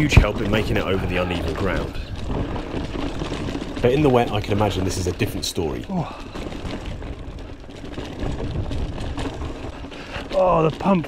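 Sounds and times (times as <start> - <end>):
bike knocks and rattles: 0.0 - 11.0
mountain bike tyre rumble: 0.0 - 11.0.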